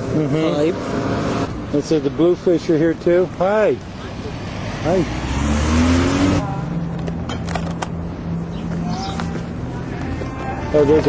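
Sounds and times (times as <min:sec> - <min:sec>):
car accelerating past: 0:04.3 - 0:06.5.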